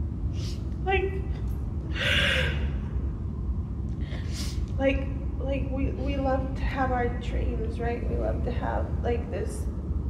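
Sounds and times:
low room hum: 0:00.0 - 0:10.0
woman gasping: 0:01.9 - 0:02.8.

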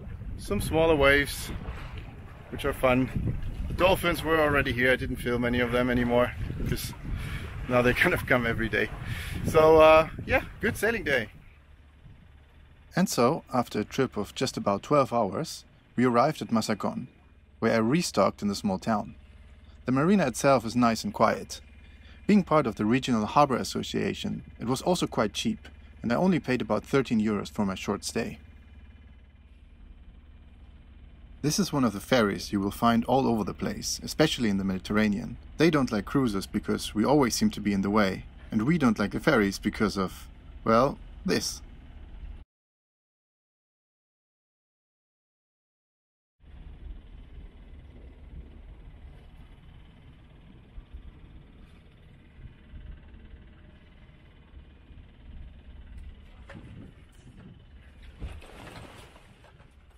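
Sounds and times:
water rushing along hull: 0:00.0 - 0:11.6, 0:55.9 - 0:59.9
wind buffeting microphone: 0:00.0 - 0:12.4
sharp water splash: 0:01.4 - 0:03.8
faint low hum: 0:46.5 - 0:59.9.

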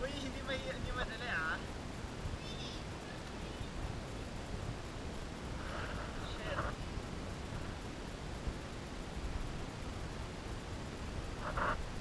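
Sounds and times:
distant voices calling out: 0:00.0 - 0:07.8
wind rumble on microphone: 0:00.0 - 0:12.0.

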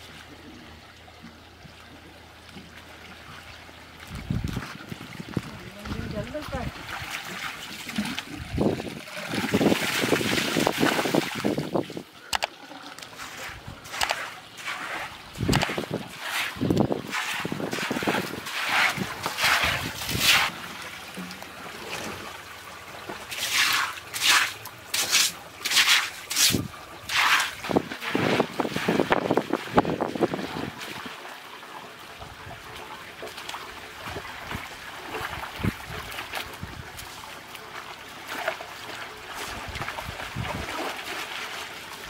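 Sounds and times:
water running from hose: 0:13.0 - 0:22.0, 0:23.2 - 0:30.7
broom sweeping water on concrete: 0:13.1 - 0:20.6, 0:23.3 - 0:29.0.

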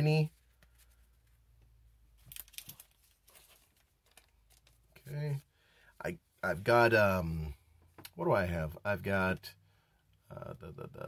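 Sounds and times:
trading cards crinkling: 0:02.2 - 0:05.1.

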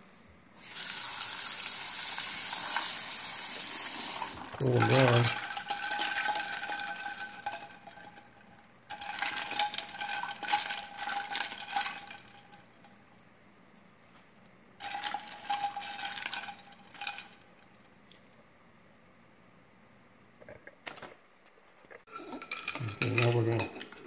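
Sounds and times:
ice cubes clinking in a metal pan: 0:00.9 - 0:12.8, 0:14.8 - 0:17.5, 0:22.1 - 0:24.0.

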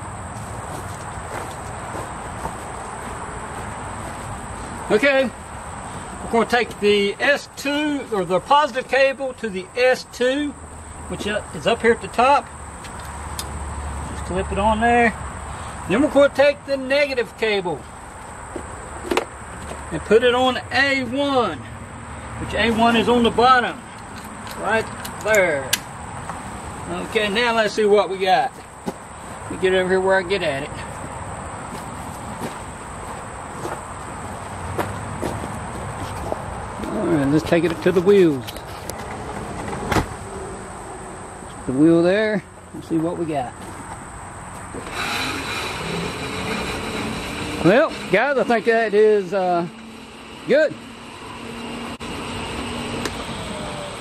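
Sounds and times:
electric motor spinning: 0:44.8 - 0:54.0.

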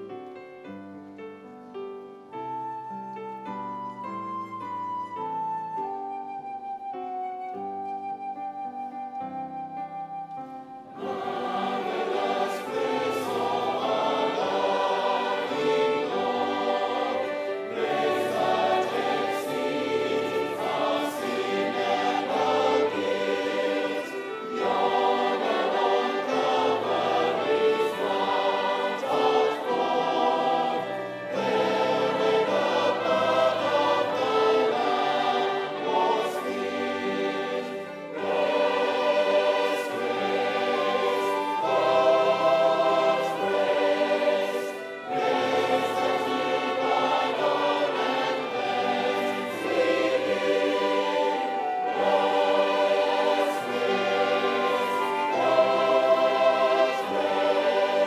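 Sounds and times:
keyboard accompaniment: 0:00.0 - 0:58.0
choir singing a hymn: 0:08.1 - 0:58.0.

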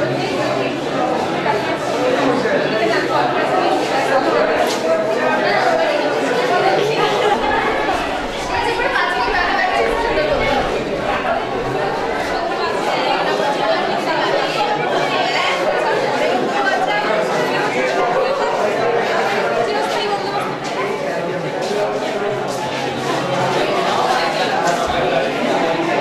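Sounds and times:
chatter of overlapping voices: 0:00.0 - 0:26.0.

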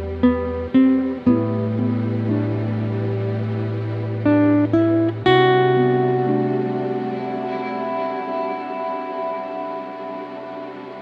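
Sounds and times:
acoustic guitar melody notes: 0:00.0 - 0:11.0.

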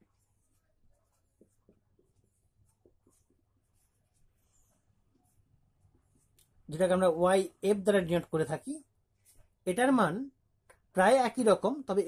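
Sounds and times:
marker pen writing on whiteboard: 0:00.0 - 0:07.9.

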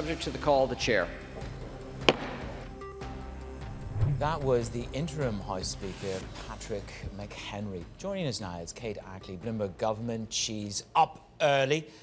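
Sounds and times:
wooden gavel strike: 0:02.1 - 0:02.6.

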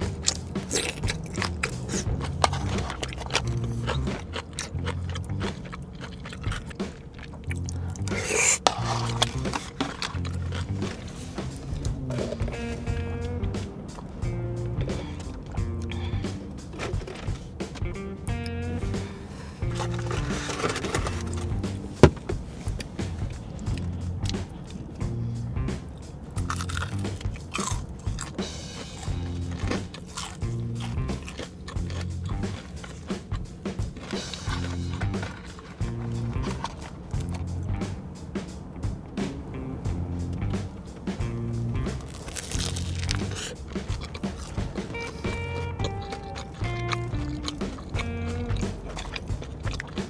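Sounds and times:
crisp crunches of biting food: 0:00.0 - 0:13.0, 0:19.6 - 0:21.9, 0:26.4 - 0:37.7, 0:41.8 - 0:50.0
wet mouth clicks: 0:00.0 - 0:13.0, 0:29.0 - 0:33.5, 0:41.8 - 0:50.0
chewing rice cakes: 0:00.0 - 0:37.9, 0:41.8 - 0:50.0
chopsticks scraping plastic tray: 0:00.3 - 0:04.7, 0:07.9 - 0:13.0, 0:19.4 - 0:22.3, 0:28.7 - 0:37.3.

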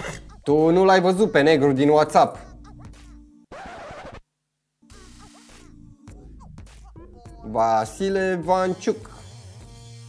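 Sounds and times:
faint background music: 0:00.0 - 0:04.2, 0:04.8 - 0:10.0
scratchy noise burst: 0:03.0 - 0:04.3.

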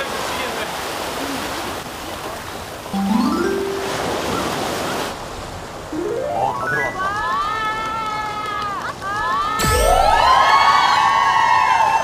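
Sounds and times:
sea surf washing: 0:00.0 - 0:09.1.

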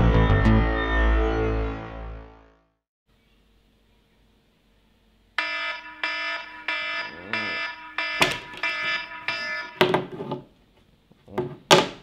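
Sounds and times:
smartphone alarm beeping: 0:05.4 - 0:09.9
sharp knocks: 0:08.0 - 0:10.2.

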